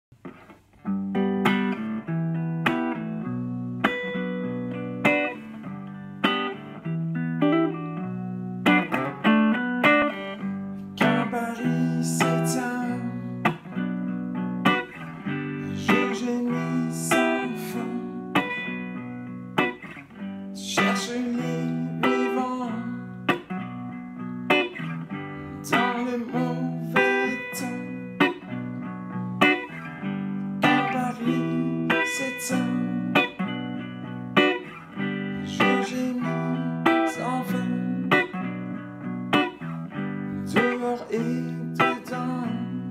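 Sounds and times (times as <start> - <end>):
electric guitar chords ringing: 0.3 - 42.9.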